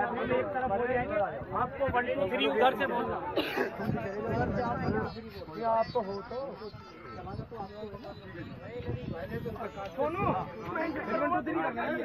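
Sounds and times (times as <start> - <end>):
overlapping crowd chatter: 0.0 - 12.0.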